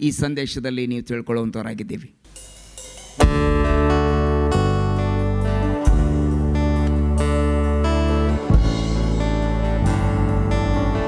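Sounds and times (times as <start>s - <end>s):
man speaking into a microphone: 0.0s - 2.2s.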